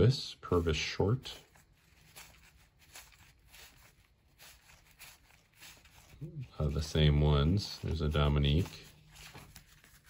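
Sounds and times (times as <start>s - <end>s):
trading cards swishing together: 0.6s - 10.0s.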